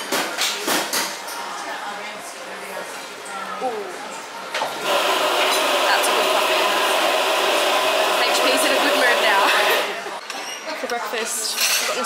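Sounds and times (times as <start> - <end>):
coffee machine hissing whir: 4.7 - 10.0.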